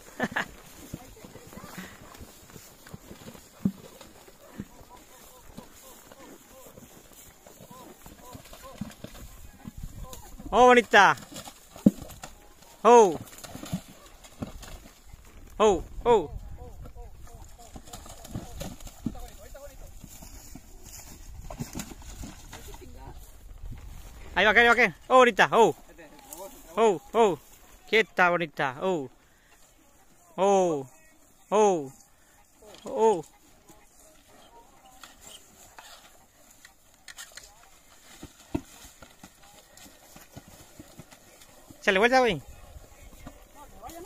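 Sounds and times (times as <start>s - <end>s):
horse hooves in mud: 0.0s - 44.0s.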